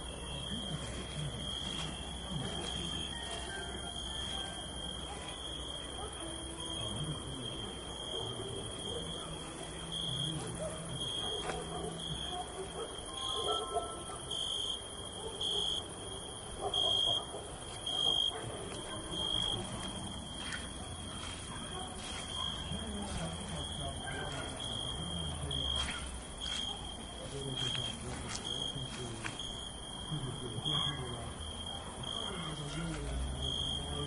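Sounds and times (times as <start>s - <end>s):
faint low murmur: 0.0s - 12.9s.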